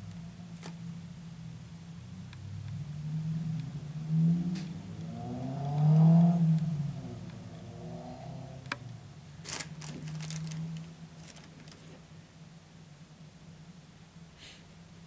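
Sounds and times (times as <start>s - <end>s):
vehicle engine revving: 2.0s - 12.0s.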